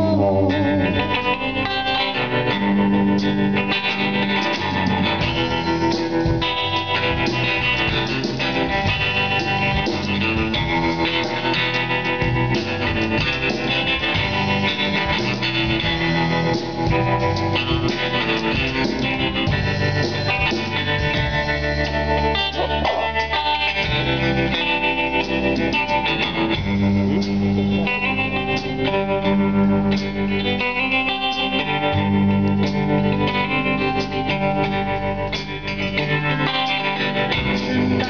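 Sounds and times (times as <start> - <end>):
country-blues band playing: 0.0 - 38.0
guitar: 0.0 - 38.0.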